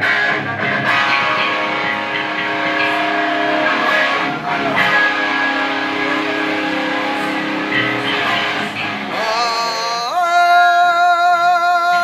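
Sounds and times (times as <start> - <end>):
band music with guitar chord: 0.0 - 10.0.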